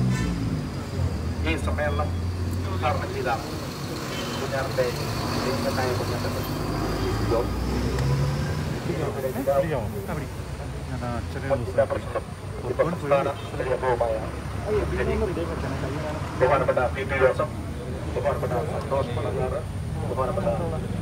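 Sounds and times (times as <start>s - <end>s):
crowd voices: 0.0s - 21.0s
man speaking into microphone: 8.8s - 21.0s.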